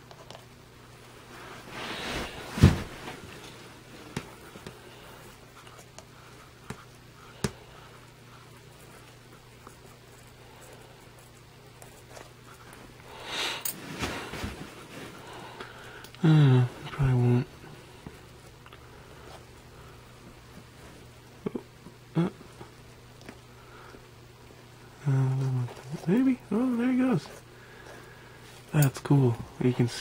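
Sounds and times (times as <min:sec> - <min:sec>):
faint steady hum: 0:00.0 - 0:30.0
soft scuffling: 0:01.2 - 0:04.8, 0:13.7 - 0:15.3.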